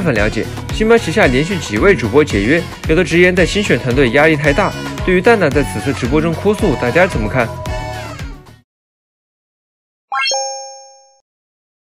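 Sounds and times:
two-note chime: 0:10.1 - 0:11.2.

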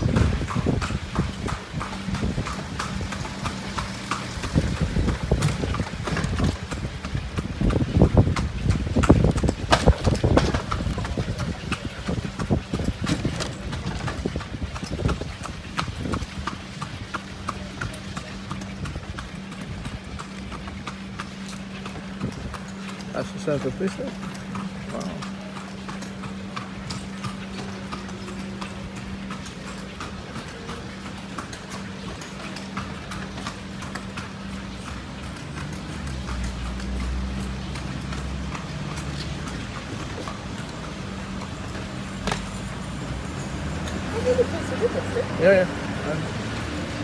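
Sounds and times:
horse hooves clip-clopping on pavement: 0:00.0 - 0:47.0.

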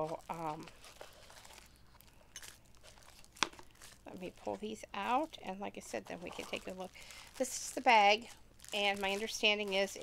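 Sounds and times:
metal tips scraping and rustling: 0:03.9 - 0:10.0.

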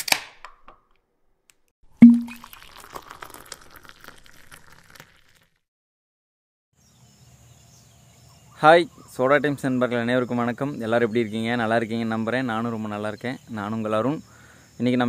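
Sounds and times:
bottle cap pop: 0:02.0 - 0:02.5
crackling fizz: 0:02.0 - 0:05.7.

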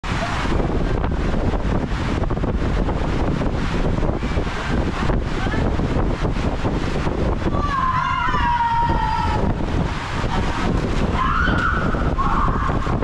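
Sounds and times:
water rushing and splashing: 0:00.0 - 0:13.0.

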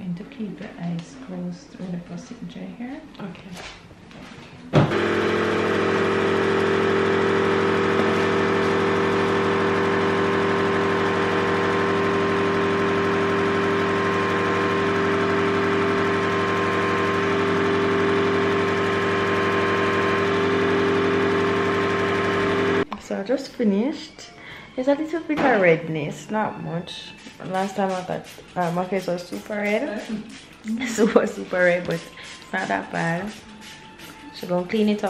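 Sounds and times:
suction pump humming: 0:04.8 - 0:22.9.

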